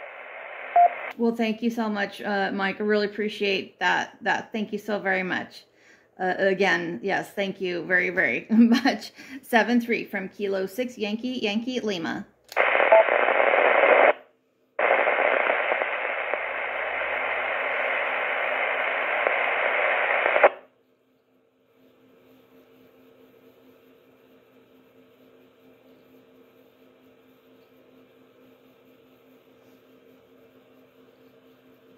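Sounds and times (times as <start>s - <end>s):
radio static hiss: 0.0s - 1.1s, 12.6s - 14.2s, 14.8s - 20.6s.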